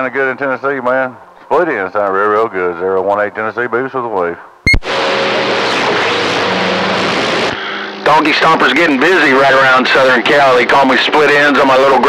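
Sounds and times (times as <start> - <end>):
radio static hissing: 4.7 - 11.3.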